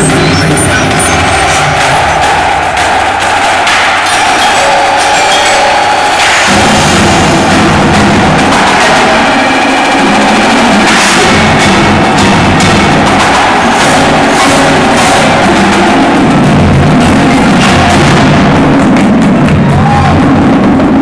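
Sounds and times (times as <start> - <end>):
low bass notes: 0.0 - 4.0, 6.4 - 21.0
marimbas and mallet percussion: 4.2 - 6.6.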